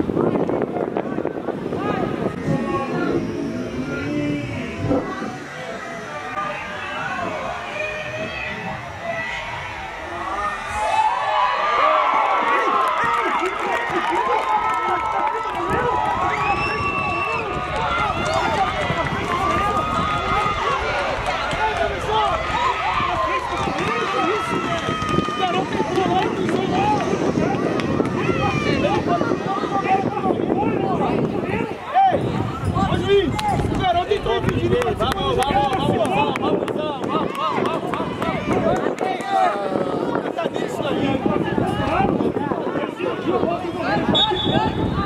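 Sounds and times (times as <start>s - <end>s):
crowd shouting and cheering: 0.0s - 45.0s.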